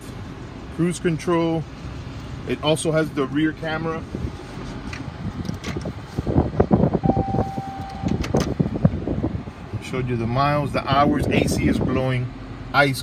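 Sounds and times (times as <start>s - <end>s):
steady beep: 7.0s - 8.2s.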